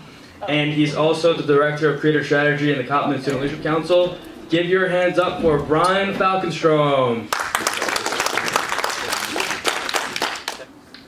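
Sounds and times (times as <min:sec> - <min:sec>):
small audience clapping: 0:07.3 - 0:11.0.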